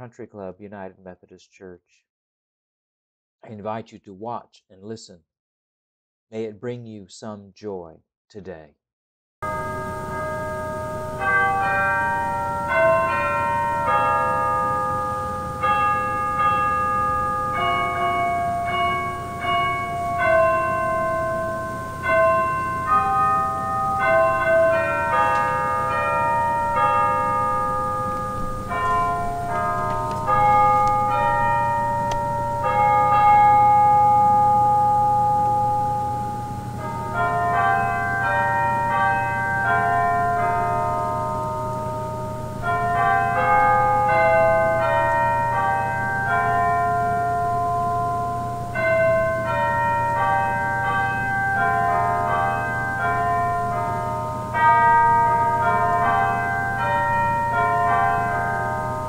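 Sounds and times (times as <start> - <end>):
church chimes playing a melody: 9.4 - 59.0.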